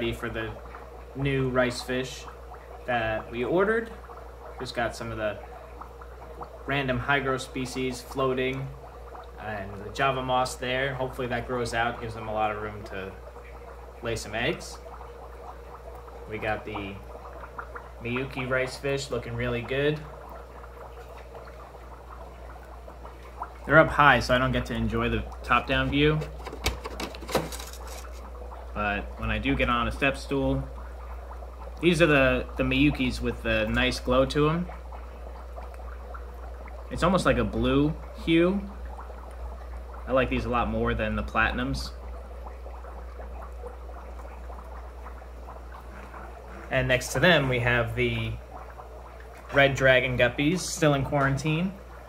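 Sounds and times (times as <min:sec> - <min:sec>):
steady low hum: 0:00.0 - 0:52.0
water trickling and bubbling: 0:00.0 - 0:52.0.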